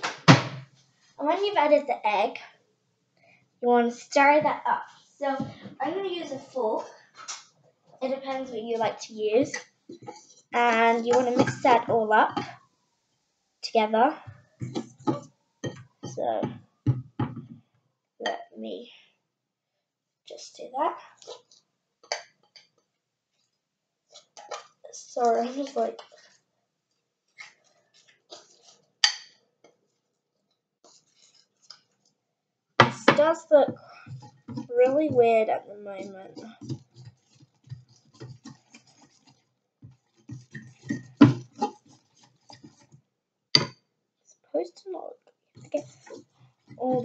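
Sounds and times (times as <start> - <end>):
fork scraping ceramic bowl: 40.2 - 42.8.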